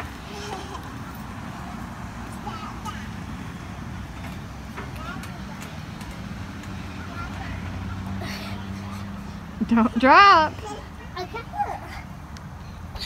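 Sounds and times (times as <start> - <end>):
faint voices: 0.0 - 13.0
vehicle engine hum: 0.0 - 13.0.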